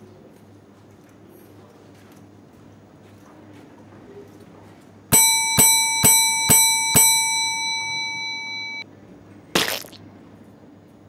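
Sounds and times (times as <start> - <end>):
desk service bell ringing: 5.1 - 8.8.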